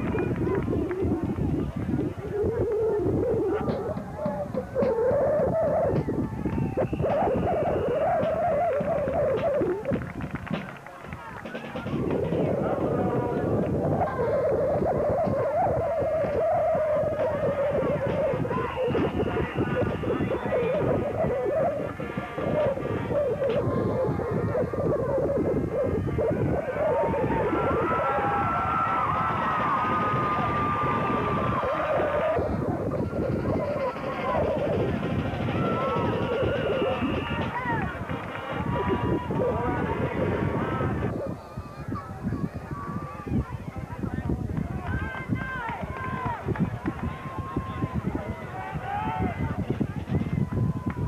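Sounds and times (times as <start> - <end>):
crowd shouting and cheering: 0.0 - 51.0.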